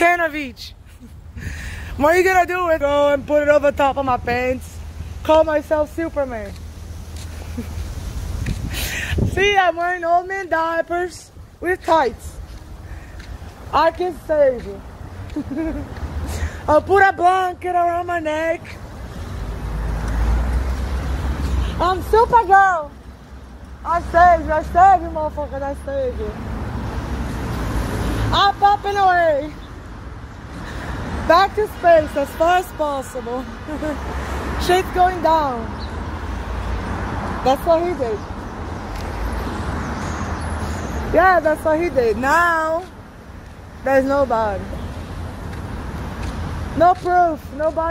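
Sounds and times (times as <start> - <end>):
vehicle engine and tyre rumble: 0.0 - 47.9
wind rumbling on microphone: 6.9 - 9.8.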